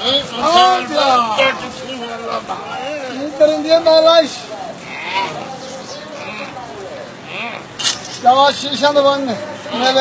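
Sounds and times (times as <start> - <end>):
animal bleating: 4.9 - 5.5.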